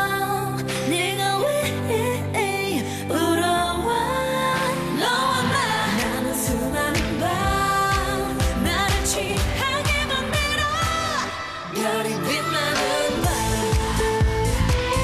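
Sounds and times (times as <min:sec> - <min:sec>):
women singing pop song: 0:00.0 - 0:15.0
backing track with bass line: 0:03.6 - 0:15.0.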